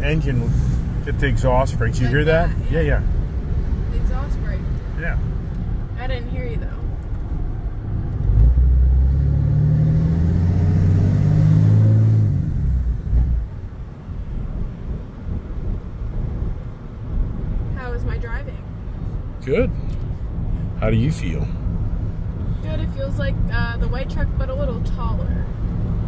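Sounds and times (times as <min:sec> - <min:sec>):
diesel engine exhaust rumble: 0:00.0 - 0:26.0.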